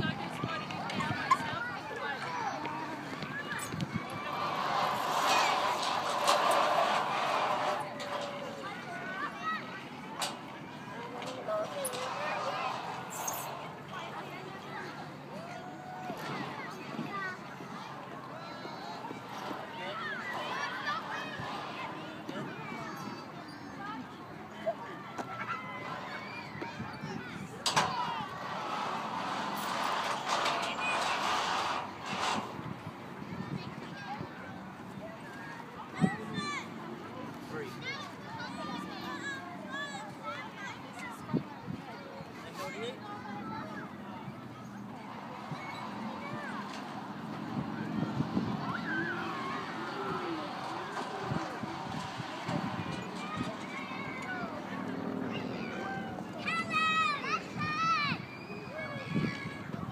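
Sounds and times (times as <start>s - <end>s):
indistinct voices: 0.0s - 24.1s, 25.6s - 32.8s, 43.8s - 56.4s.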